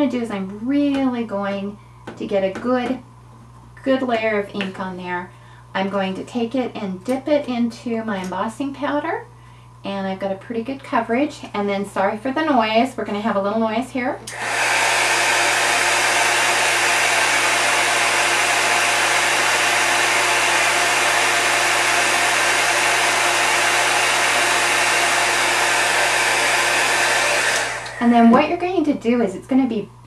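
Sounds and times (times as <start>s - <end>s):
heat gun blowing: 14.3s - 28.2s.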